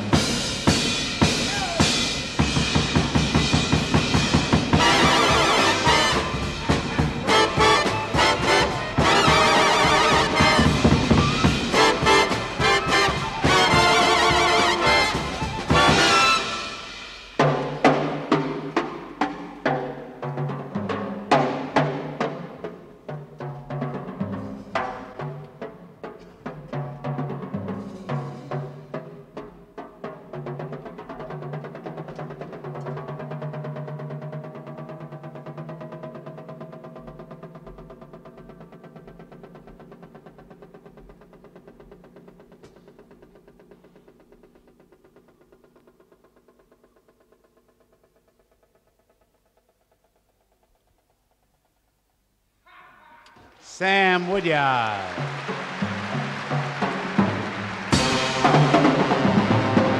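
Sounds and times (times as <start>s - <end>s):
drum kit solo: 0.0s - 50.8s, 53.3s - 59.9s
audience applause: 53.5s - 59.9s.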